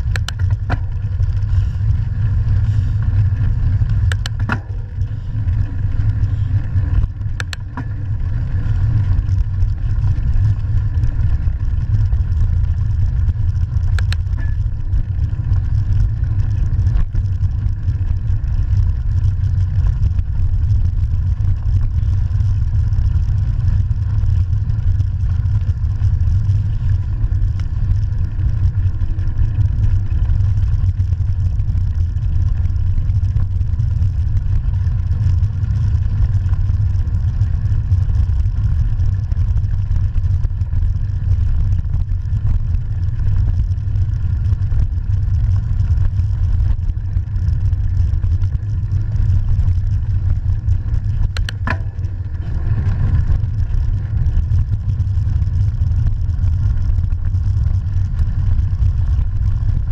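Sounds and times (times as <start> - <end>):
bike tyres rolling over gravel: 0.0 - 59.9.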